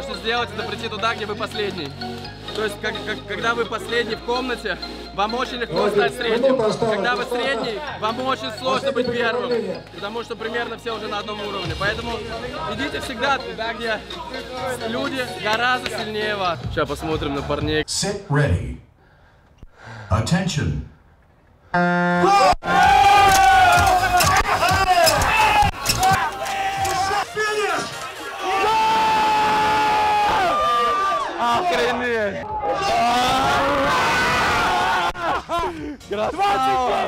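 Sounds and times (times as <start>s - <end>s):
people shouting encouragement: 22.2s - 35.4s, 36.1s - 37.0s.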